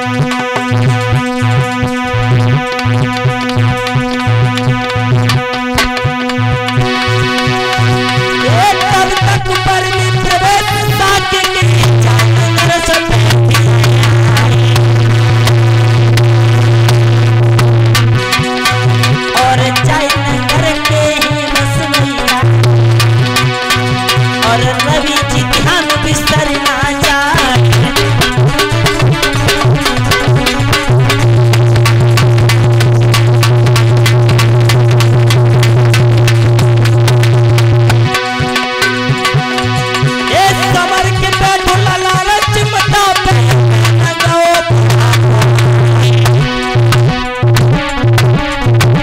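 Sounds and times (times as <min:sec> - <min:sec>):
sustained note: 0:00.0 - 0:48.9
drum strokes: 0:00.0 - 0:49.0
fast steady beat: 0:00.0 - 0:49.0
held low drone tone: 0:11.6 - 0:21.1, 0:27.2 - 0:40.7, 0:44.7 - 0:49.0.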